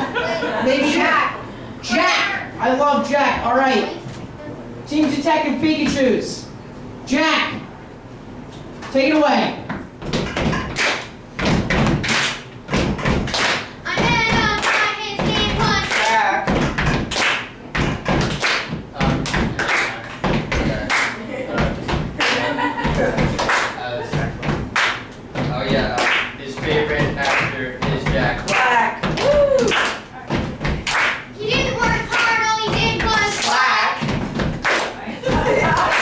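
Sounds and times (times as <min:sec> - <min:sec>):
teenager rapping: 0:04.9 - 0:06.4, 0:13.9 - 0:17.0, 0:17.8 - 0:23.2, 0:25.4 - 0:36.0
rhythmic beat of thumps and taps: 0:09.7 - 0:36.0.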